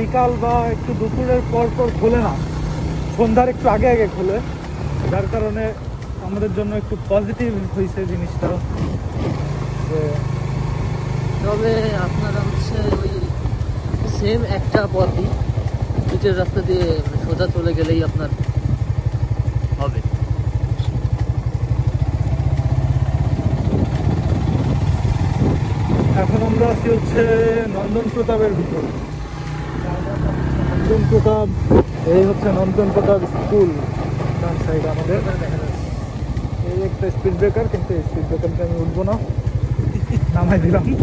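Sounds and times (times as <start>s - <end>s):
motorcycle engine cruising: 0.0s - 41.0s
road rumble: 0.0s - 41.0s.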